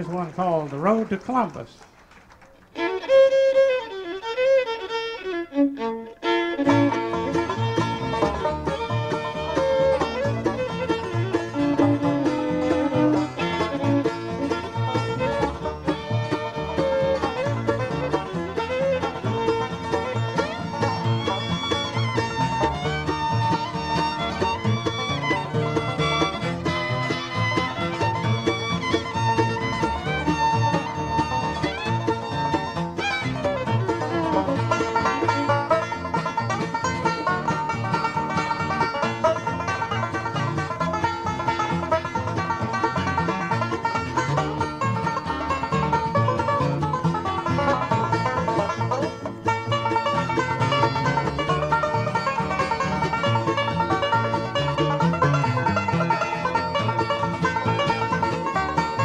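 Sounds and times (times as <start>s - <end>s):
bluegrass band playing: 0.0s - 59.0s.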